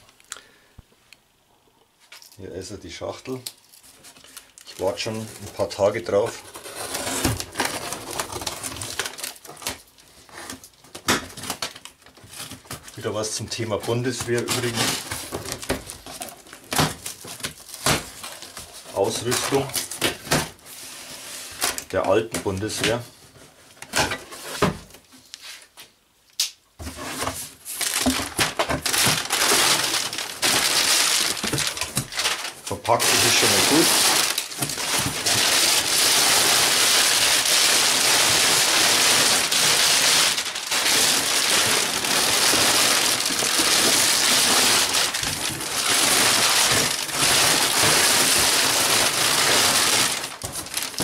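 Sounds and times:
plastic packing crinkling: 3.2s - 23.0s, 26.9s - 51.0s.

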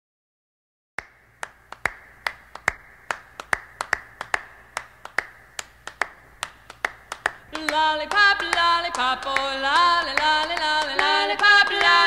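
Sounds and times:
hand claps: 1.0s - 12.0s.

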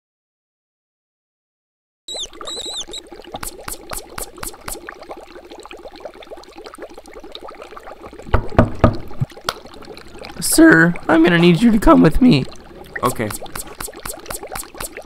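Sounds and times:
quick pops: 2.1s - 4.9s, 13.3s - 15.0s
liquid bubbling and trickling: 2.1s - 15.0s.

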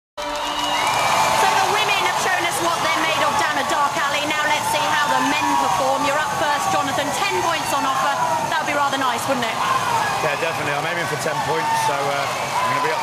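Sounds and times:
audience cheering and whooping: 0.2s - 13.0s.

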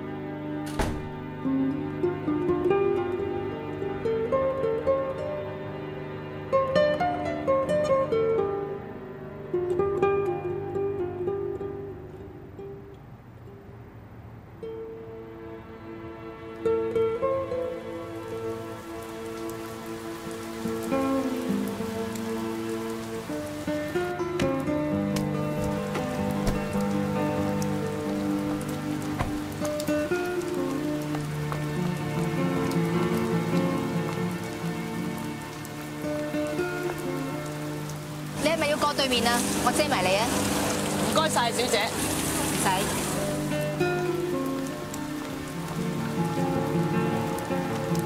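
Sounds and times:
steady rain: 15.1s - 48.0s.

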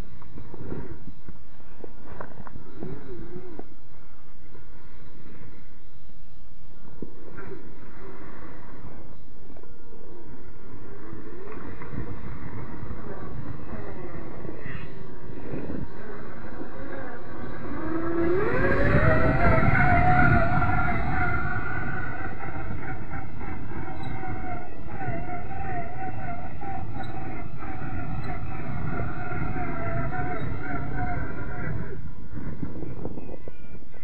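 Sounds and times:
electric motor whining: 15.8s - 31.9s.

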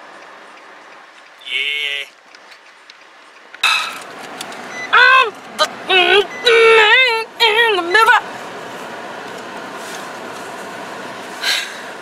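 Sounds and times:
road noise inside a car: 0.0s - 12.0s.

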